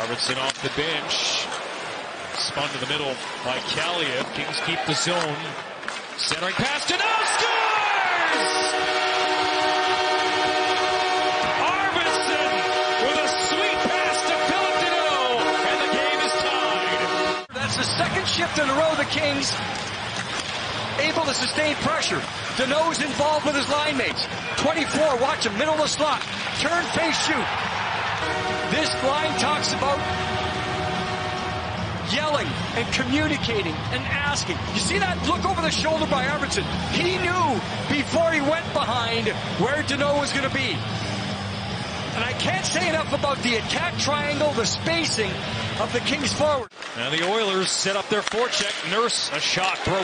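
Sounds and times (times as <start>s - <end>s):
crowd cheering: 1.1s - 50.0s
arena goal horn chord: 8.2s - 17.6s, 28.2s - 33.4s.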